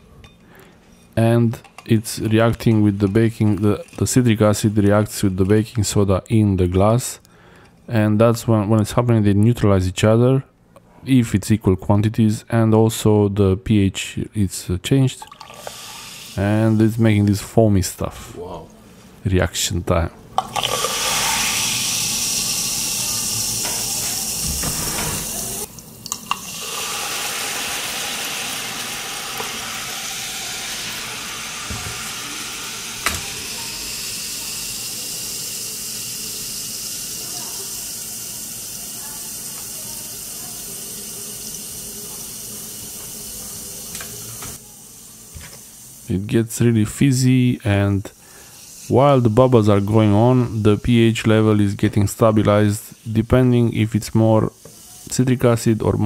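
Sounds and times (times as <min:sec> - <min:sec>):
bubbles fizzing in water: 0:20.4 - 0:40.4.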